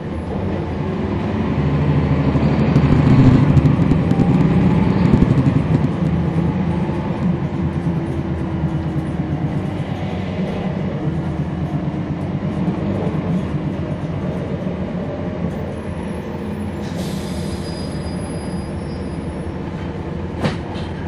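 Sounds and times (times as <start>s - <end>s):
bus diesel engine drone: 0.0s - 21.0s
high-pitched squeal and hiss: 16.0s - 19.5s.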